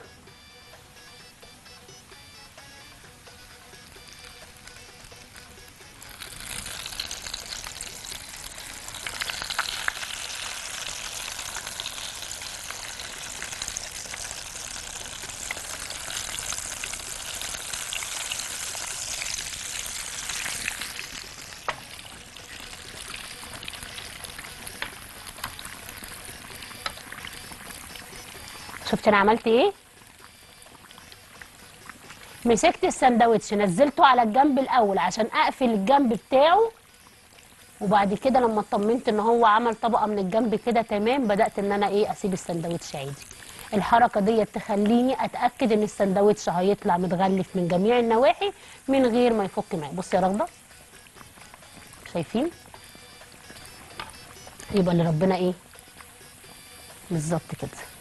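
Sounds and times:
food sizzling in hot oil: 0:02.3 - 0:58.0.

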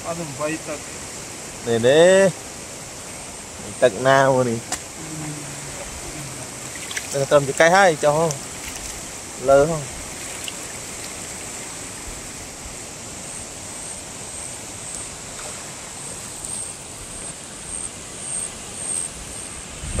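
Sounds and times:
river flowing over stones: 0:00.0 - 0:18.1.

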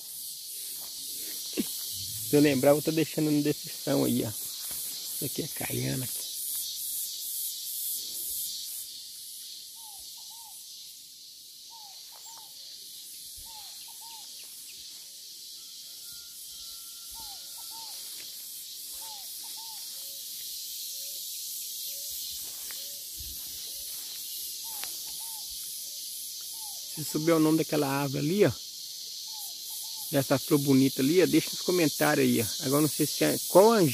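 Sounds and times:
insects chorus hissing: 0:00.0 - 0:33.9.

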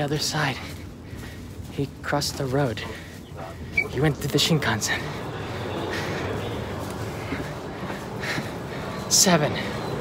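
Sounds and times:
train interior hum and rush: 0:00.0 - 0:10.0.

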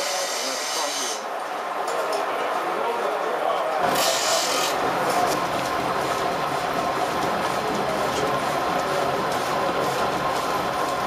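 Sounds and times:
saw-sharpening machine rasping: 0:00.0 - 0:01.2, 0:03.8 - 0:05.5.

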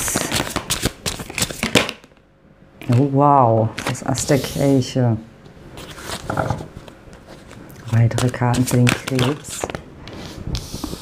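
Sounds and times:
cards being shuffled: 0:00.0 - 0:02.1, 0:05.8 - 0:11.0
woman speaking: 0:02.9 - 0:05.3, 0:07.8 - 0:09.7.

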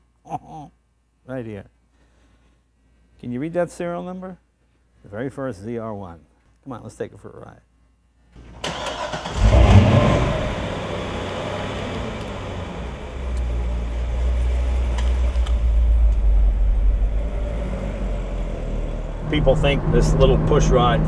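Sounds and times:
car engine starting and idling: 0:08.4 - 0:21.0.

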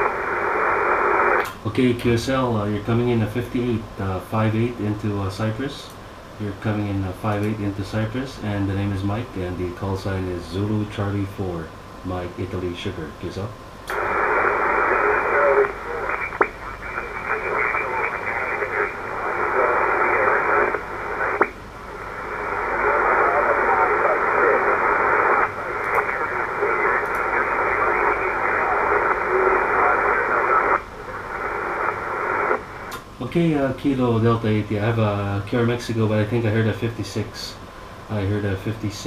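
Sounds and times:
radio hiss and interference: 0:00.0 - 0:39.0
weak radio voice: 0:13.9 - 0:32.7.

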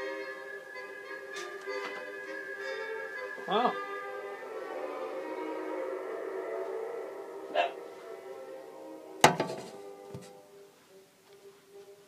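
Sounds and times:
orchestral music on radio: 0:00.0 - 0:12.0
sharp knock near microphone: 0:09.2 - 0:10.3.

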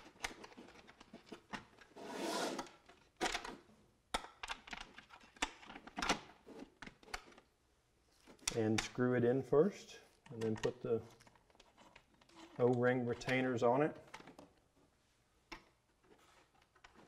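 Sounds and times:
small plastic parts clicking: 0:02.8 - 0:07.5.

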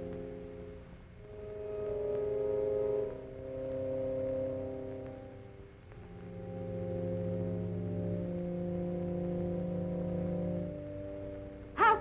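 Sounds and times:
solemn organ chords: 0:00.0 - 0:12.0.

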